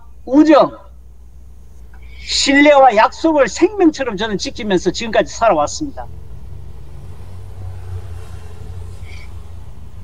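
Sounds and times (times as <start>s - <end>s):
low rumble of background noise: 0.0s - 10.0s.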